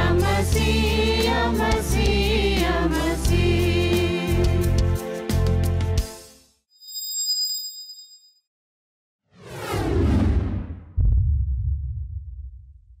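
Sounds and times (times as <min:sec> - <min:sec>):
bright chime: 0:06.8 - 0:08.4
deep rumbling boom: 0:09.6 - 0:13.0.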